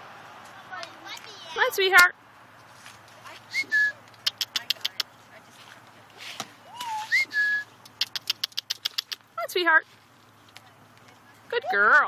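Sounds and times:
person whistling: 6.7s - 7.7s
rapid sharp clicks: 7.8s - 9.3s.

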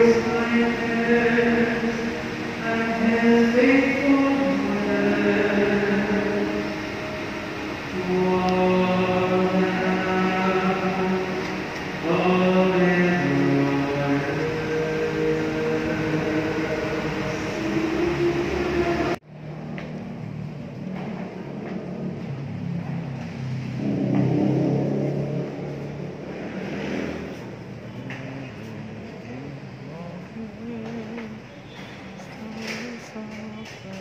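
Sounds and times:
group singing a hymn: 0.0s - 19.2s.

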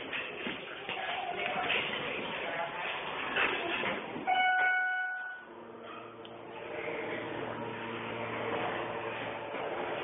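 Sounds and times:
elevator door machinery hum: 1.8s - 10.0s
elevator arrival chime: 4.3s - 6.2s.

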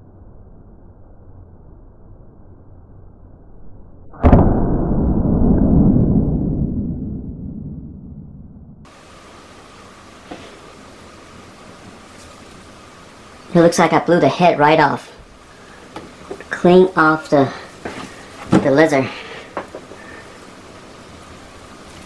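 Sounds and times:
muffled low rumble: 0.0s - 8.9s.

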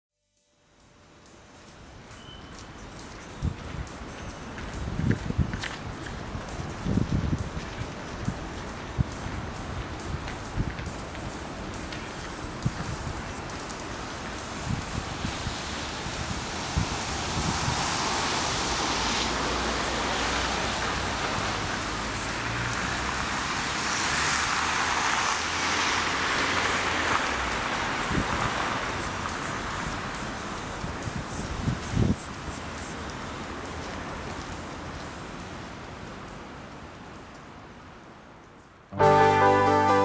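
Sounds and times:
vehicles rushing past: 1.0s - 40.0s.

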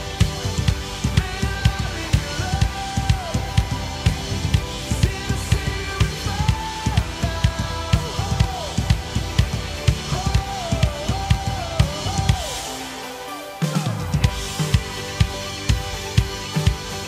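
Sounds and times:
drum kit playing a groove: 0.0s - 17.0s
recorded worship song: 0.0s - 17.0s.

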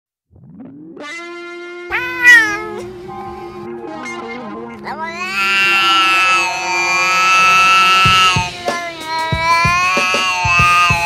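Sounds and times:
background music with held notes: 0.4s - 11.0s
cat meowing: 1.9s - 2.9s, 4.8s - 11.0s.

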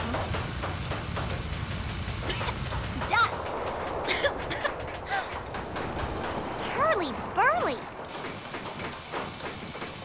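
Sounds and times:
construction-site noise: 0.0s - 10.0s.

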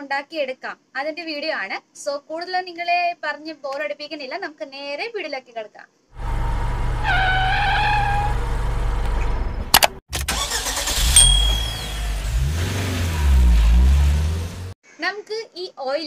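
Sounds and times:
sharp clicks: 9.7s - 10.3s.

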